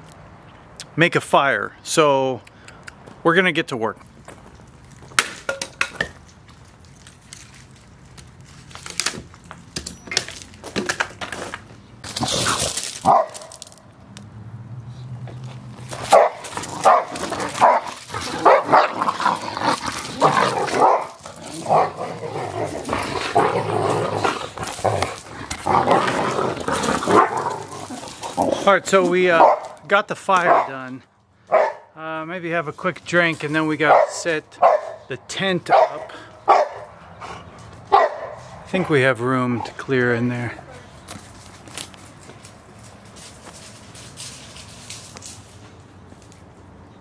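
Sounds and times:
dogs barking: 13.0s - 13.6s, 15.9s - 28.4s, 29.3s - 30.8s, 31.5s - 31.9s, 33.8s - 38.7s.

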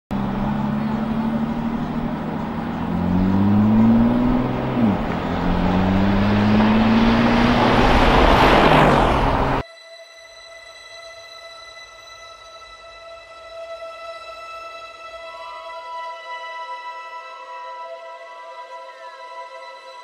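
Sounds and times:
engines accelerating hard: 0.1s - 9.6s.

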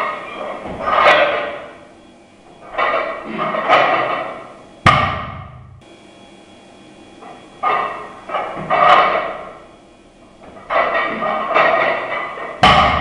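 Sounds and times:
barbell clank: 0.0s - 1.8s, 2.6s - 5.8s, 7.2s - 9.6s, 10.5s - 13.0s
rattling weight plates: 0.0s - 1.9s, 2.5s - 5.7s, 7.2s - 9.7s, 10.3s - 13.0s
barbell thudding on wooden platform: 4.9s - 5.8s, 10.7s - 13.0s.

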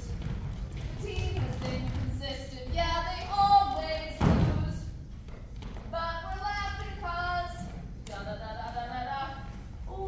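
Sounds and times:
heavy thump: 4.1s - 4.9s.

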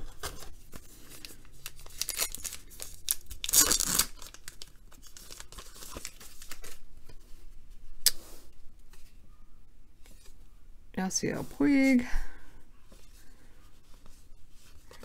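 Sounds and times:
cards rustling: 0.1s - 6.8s
wrapper tearing and crinkling: 1.6s - 6.8s.

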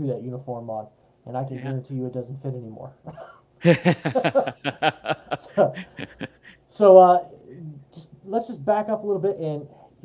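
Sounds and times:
man laughing: 3.6s - 6.6s.

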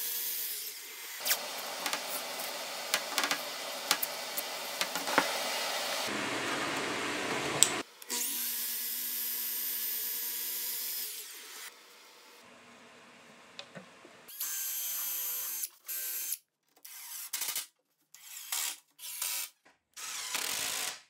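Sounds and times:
power tool running: 0.6s - 8.4s
miter saw motor running: 1.2s - 5.0s.

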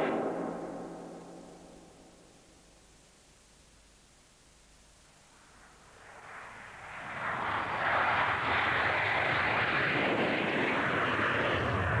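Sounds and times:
jet engines rushing: 0.0s - 1.3s, 5.9s - 12.0s.

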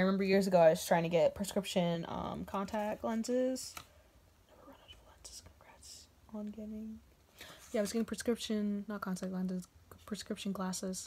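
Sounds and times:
woman whispering: 4.5s - 7.0s.

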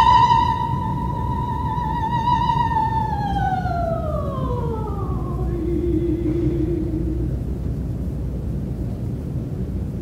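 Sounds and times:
woman singing operatically: 0.0s - 7.5s
low rumble of hall noise: 0.0s - 10.0s.

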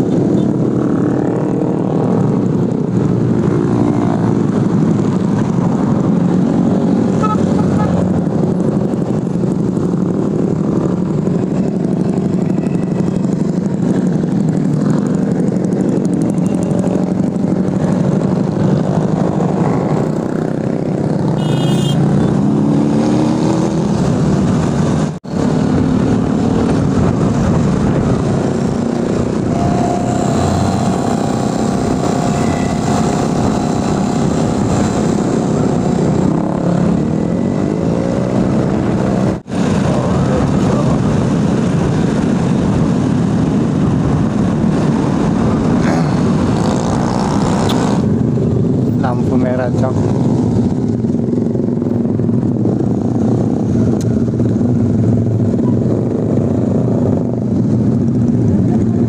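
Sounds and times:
motorcycle and scooter engines droning: 0.0s - 59.0s
road noise: 0.0s - 59.0s
wind noise: 0.0s - 59.0s.

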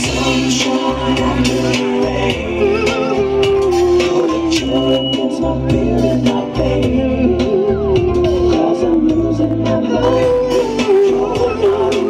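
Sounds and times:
dance-pop music with steady beat: 0.0s - 12.0s
man singing into a microphone: 0.0s - 12.0s.

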